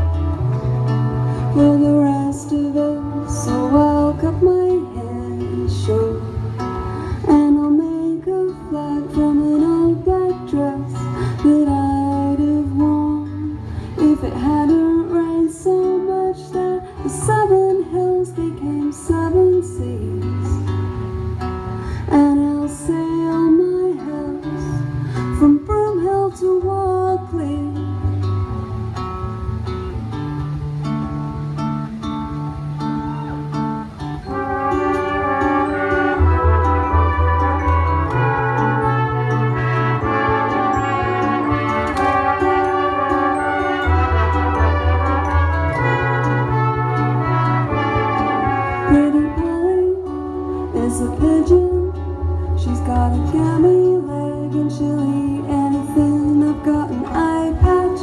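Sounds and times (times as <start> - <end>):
woman singing: 0.0 - 21.0, 21.9 - 28.4, 34.3 - 58.0
strummed acoustic guitar: 0.0 - 58.0
band accompaniment: 33.0 - 49.6.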